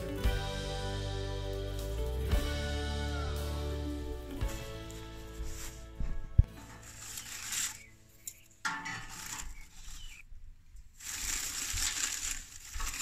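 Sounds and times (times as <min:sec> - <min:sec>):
paper crinkling and rustling: 0:04.6 - 0:10.3, 0:10.9 - 0:13.0.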